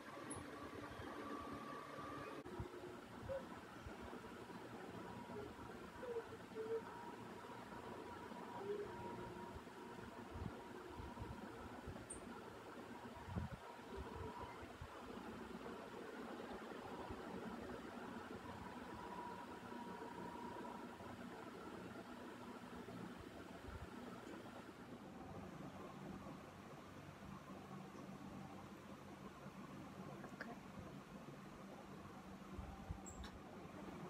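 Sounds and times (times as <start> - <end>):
faint mechanical hum: 0.0 - 34.0.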